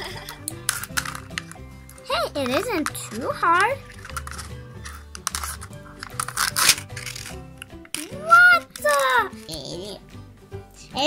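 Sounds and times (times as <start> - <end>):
children's music with bass line: 0.0 - 11.0
plastic wrapping crinkling and tearing: 5.2 - 7.4.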